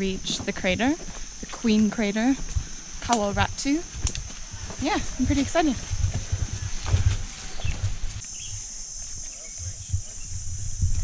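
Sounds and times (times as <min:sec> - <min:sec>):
high-pitched insect drone: 0:00.0 - 0:11.0
footsteps on muddy trail: 0:00.3 - 0:08.3
bird chirps: 0:07.5 - 0:08.6.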